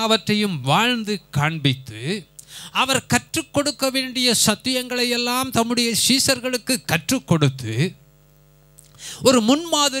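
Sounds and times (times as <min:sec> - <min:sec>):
man speaking into a microphone: 0:00.0 - 0:08.0, 0:09.0 - 0:10.0
faint electrical mains hum: 0:00.0 - 0:10.0.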